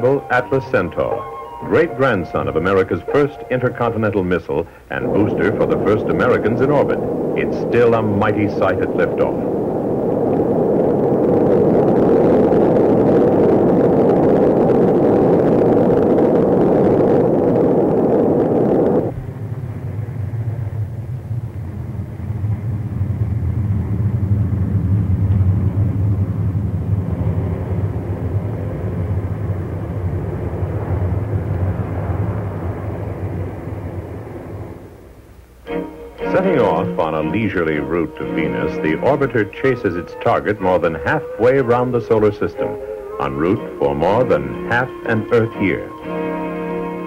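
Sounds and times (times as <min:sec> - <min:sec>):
deep distant rumble: 0:00.0 - 0:47.0
rocket roar: 0:00.0 - 0:47.0.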